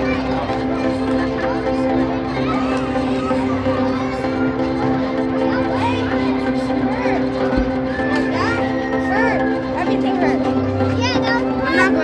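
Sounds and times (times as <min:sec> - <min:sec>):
background music with held tones: 0:00.0 - 0:12.0
children calling out and chattering: 0:00.0 - 0:12.0.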